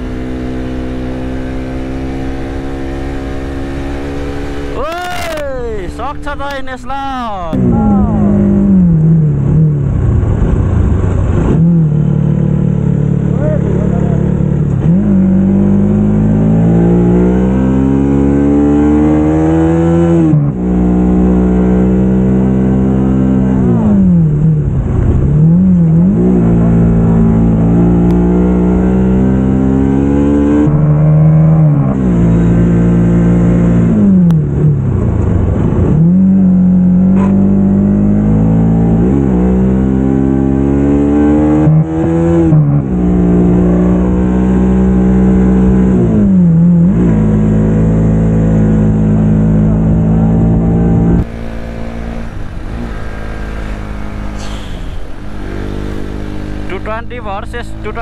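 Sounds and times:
motorcycle engine revving: 0.0 - 6.4, 7.6 - 58.0.

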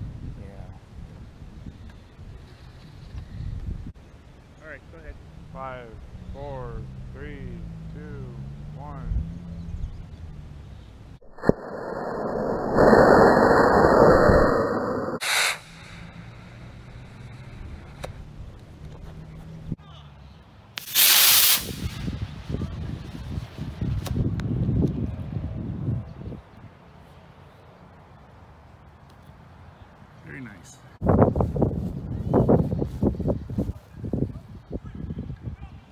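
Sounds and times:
loud rushing hiss: 11.2 - 17.6, 20.8 - 22.0
short loud burst of noise: 11.2 - 17.6
rocket motor igniting crack: 11.2 - 18.2, 20.8 - 22.1.

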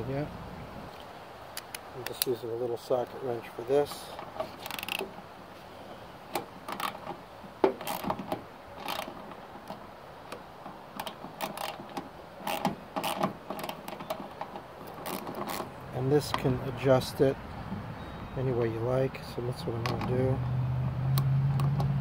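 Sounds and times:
small metallic wrench clicks: 4.6 - 5.0.

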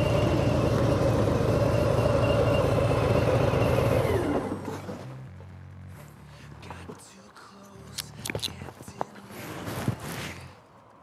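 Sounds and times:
motorcycle engine running: 0.0 - 6.2.

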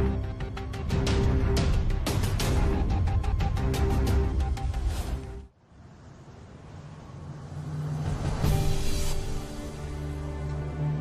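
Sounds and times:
low musical riser: 2.2 - 11.0.

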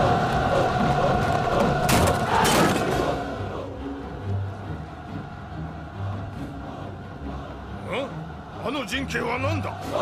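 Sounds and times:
low dramatic background score: 0.0 - 10.0.

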